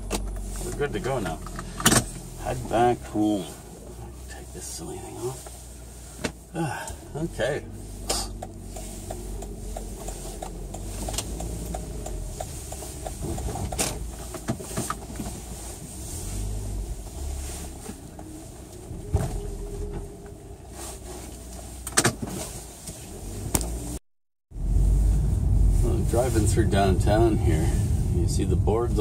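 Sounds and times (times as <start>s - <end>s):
car engine and road rumble: 0.0s - 29.0s.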